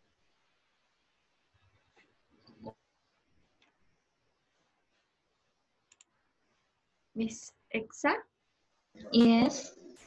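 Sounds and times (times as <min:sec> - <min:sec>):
faint sharp clicks: 0:05.9 - 0:06.1.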